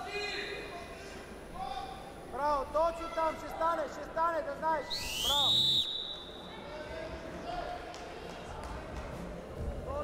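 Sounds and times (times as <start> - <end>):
indoor hall noise: 0.0 - 10.0
referee's whistle blast: 4.9 - 6.5.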